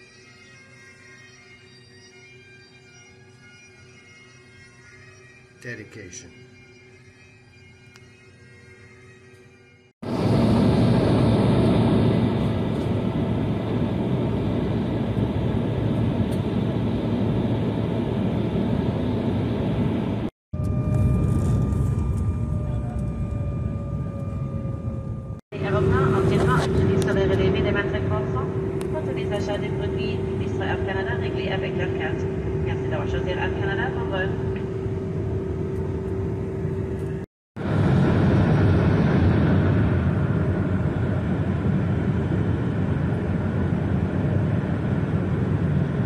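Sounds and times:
jet engine whine: 0.0 - 46.0
jet cabin engine and air rush: 10.0 - 46.0
steady hum: 10.1 - 46.0
voices: 25.6 - 34.4.

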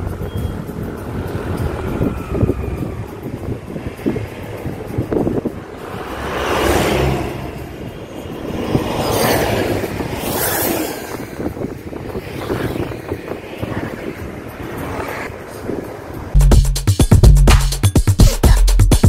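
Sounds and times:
road and wind noise in car: 0.0 - 16.4
passing traffic rush: 0.0 - 18.2.

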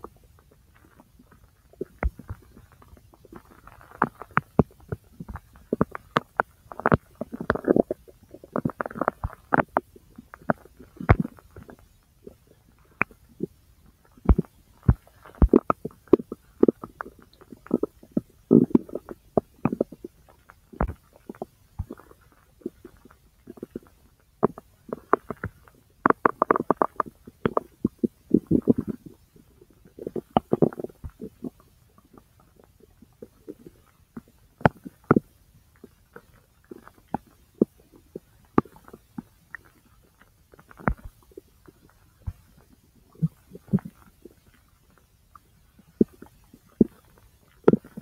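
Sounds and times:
bowel gurgles and pops: 1.8 - 48.0.

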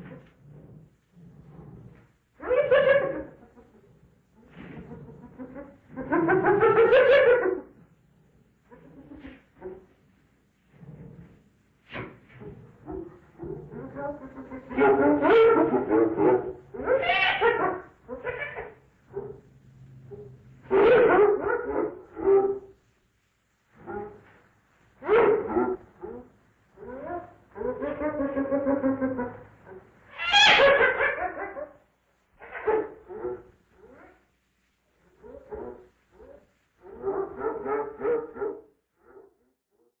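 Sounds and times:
animal calls and cries: 0.0 - 7.8, 11.9 - 22.7, 23.8 - 24.4, 25.0 - 31.8, 32.4 - 34.2, 35.1 - 39.3.

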